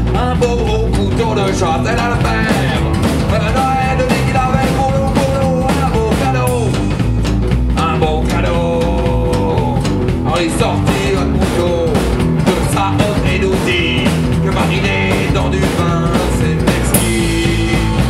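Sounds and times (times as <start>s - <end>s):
electric guitar lead line: 0.0s - 18.0s
rockabilly band playing live: 0.0s - 18.0s.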